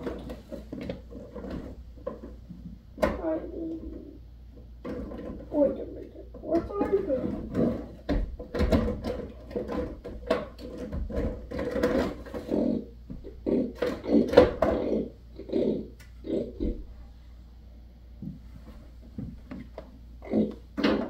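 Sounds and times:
person talking indistinctly: 3.0s - 4.2s, 5.4s - 7.8s.

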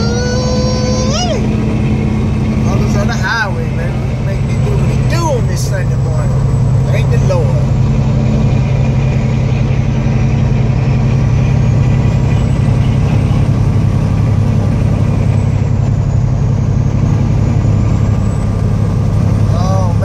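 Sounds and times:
car engine drone: 0.0s - 20.0s.

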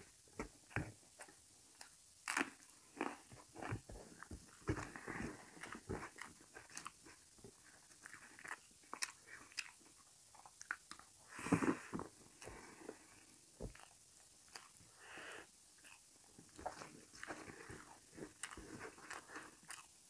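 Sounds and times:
chewing and crunching food: 0.0s - 20.0s.

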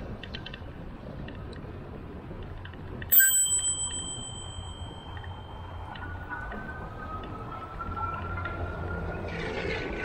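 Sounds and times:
tyre and wind noise: 0.0s - 5.4s
bicycle bell ding: 3.1s - 6.2s.

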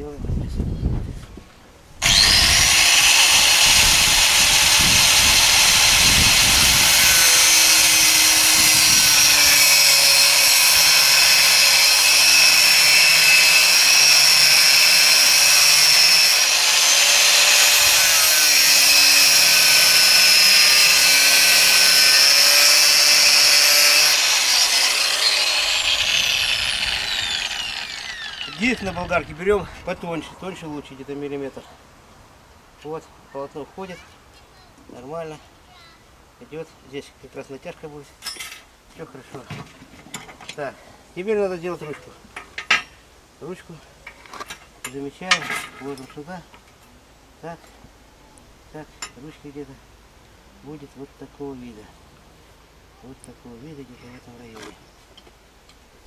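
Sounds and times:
angle grinder cutting metal: 2.0s - 29.1s.

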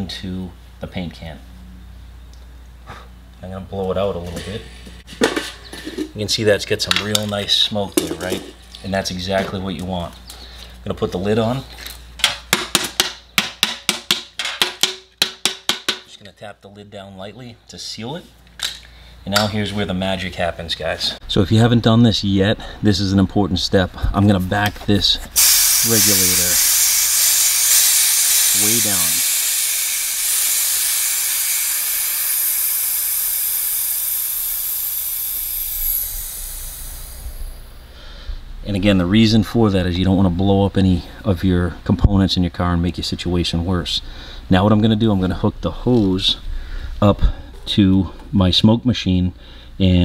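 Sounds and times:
compressed air hissing: 25.4s - 38.3s.

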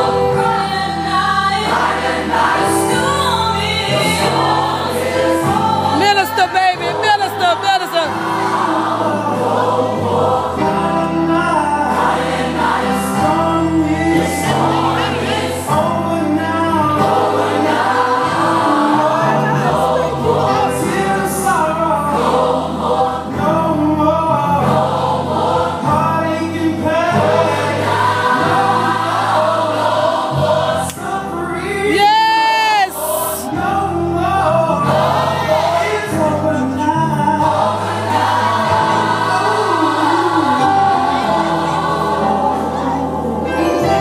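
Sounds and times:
gospel choir singing: 0.0s - 44.0s.

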